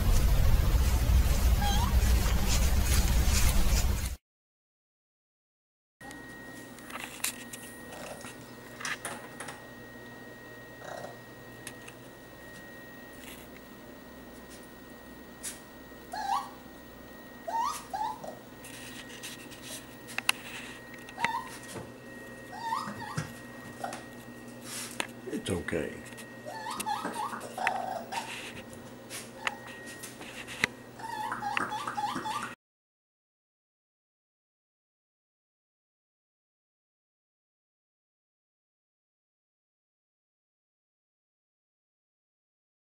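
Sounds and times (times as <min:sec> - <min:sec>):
porcupine whining cries: 0:01.6 - 0:02.0, 0:16.1 - 0:16.7, 0:17.4 - 0:18.5, 0:21.0 - 0:21.7, 0:22.4 - 0:24.1, 0:26.4 - 0:30.0, 0:31.0 - 0:32.6
raccoon calling: 0:17.4 - 0:18.4, 0:22.5 - 0:24.0, 0:26.4 - 0:28.5.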